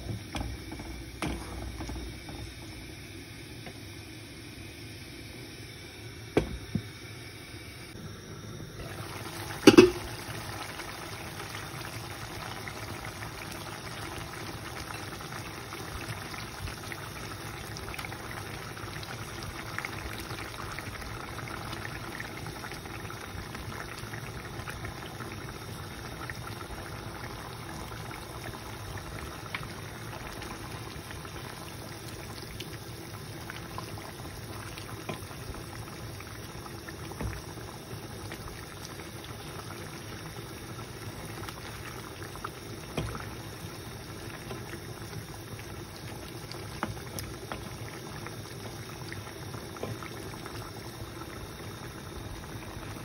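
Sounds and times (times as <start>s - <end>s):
liquid simmering in a pan: 7.9s - 53.0s.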